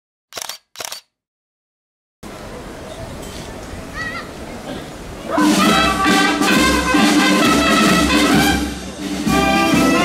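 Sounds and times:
short sharp clicks: 0:00.3 - 0:01.2.

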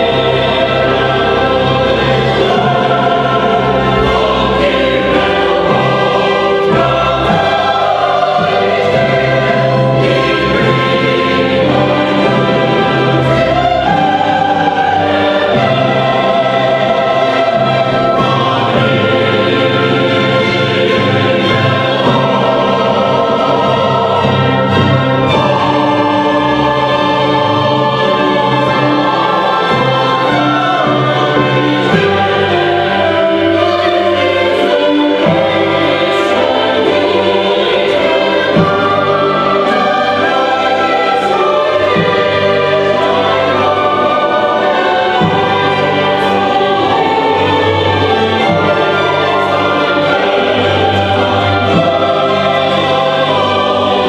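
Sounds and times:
mixed choir singing: 0:00.0 - 0:54.0
orchestra playing chords: 0:00.0 - 0:54.0.

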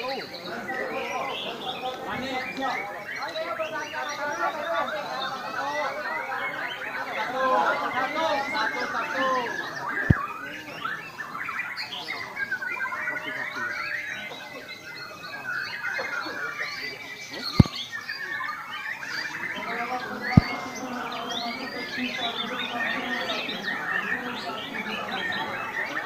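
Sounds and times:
songbirds chirping and trilling: 0:00.0 - 0:26.0.

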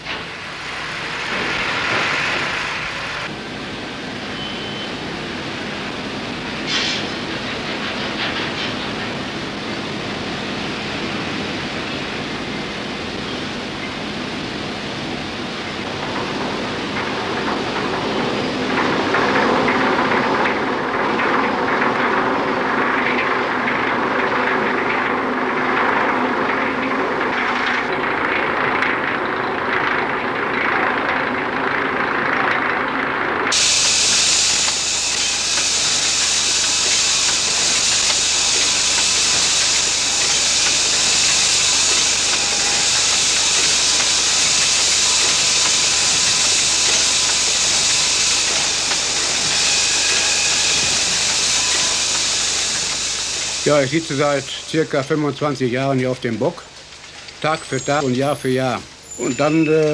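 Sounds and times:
loud steady steam hiss: 0:00.0 - 0:28.0, 0:33.5 - 0:59.9
machinery rumbling and clattering: 0:05.0 - 0:59.9.

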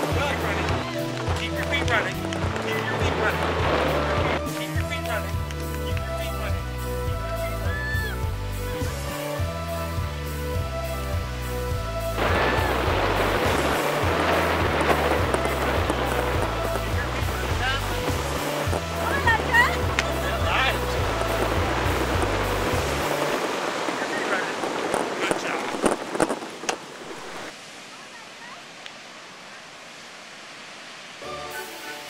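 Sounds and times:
voices calling out: 0:00.0 - 0:09.6, 0:11.8 - 0:26.3
music with stepped bass line: 0:00.0 - 0:23.3
surf rushing: 0:00.0 - 0:28.6
wind: 0:00.0 - 0:32.0.

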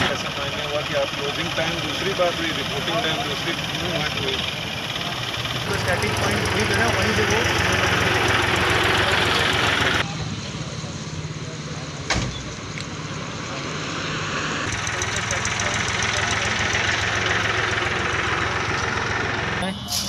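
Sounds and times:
car engine idling: 0:00.0 - 0:13.8, 0:14.6 - 0:20.0.

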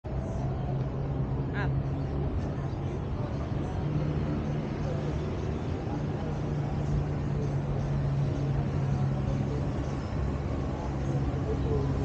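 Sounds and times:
distant traffic hum: 0:00.1 - 0:12.0.

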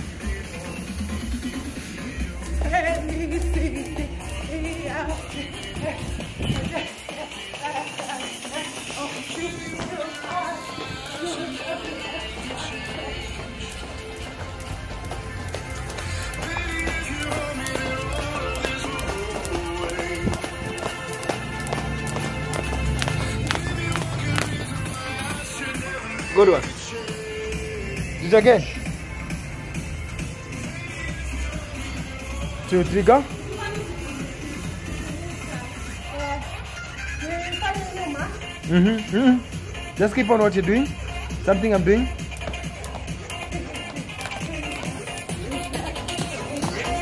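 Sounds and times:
pop music with singing: 0:00.0 - 0:47.0
skipping rope tapping: 0:02.5 - 0:10.4, 0:11.0 - 0:25.4, 0:41.8 - 0:47.0.

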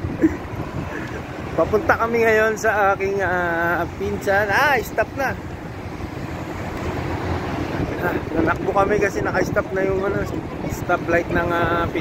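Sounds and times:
rumble of passing cars: 0:00.0 - 0:12.0.

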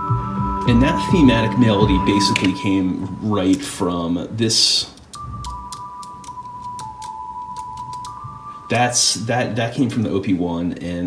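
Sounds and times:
synthesizer melody of pure tones: 0:00.0 - 0:04.4, 0:05.1 - 0:10.1
light irregular clicking: 0:04.9 - 0:08.2.

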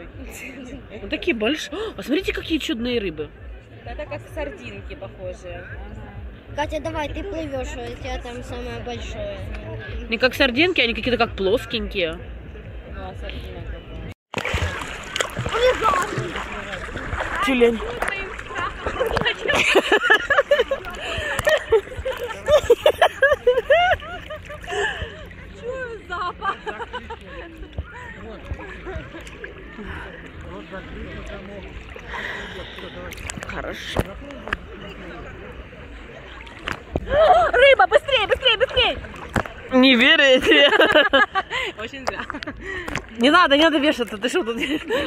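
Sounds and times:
faint voices of people: 0:00.0 - 0:45.0
sea water splashing around swimmers: 0:14.3 - 0:45.0.

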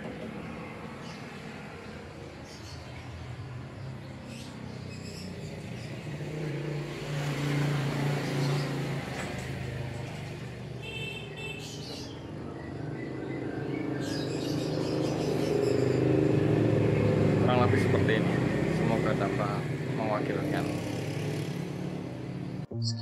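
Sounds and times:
vehicle engine hum: 0:00.0 - 0:22.8.

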